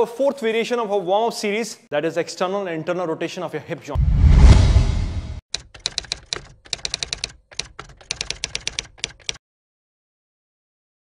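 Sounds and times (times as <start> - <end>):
low whoosh: 4.0 - 5.4
keyboard typing clicks: 5.5 - 9.4.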